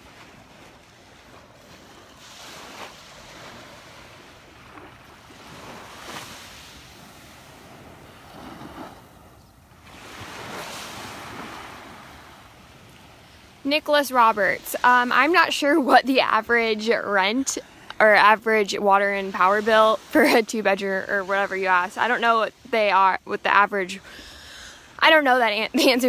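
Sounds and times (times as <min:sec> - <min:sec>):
small waves washing on sand: 0:00.0 - 0:26.0.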